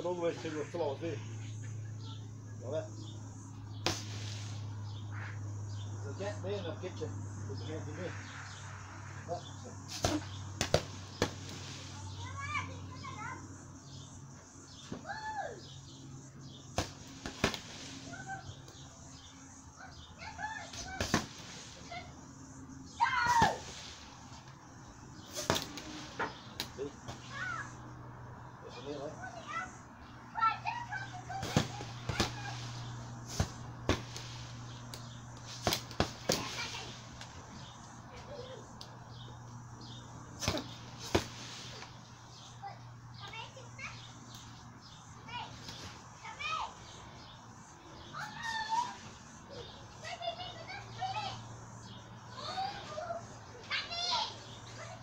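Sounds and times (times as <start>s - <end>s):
children's voices: 11.8s - 13.5s, 28.6s - 33.0s, 36.3s - 37.2s, 38.0s - 38.8s, 42.3s - 47.3s, 47.9s - 55.0s.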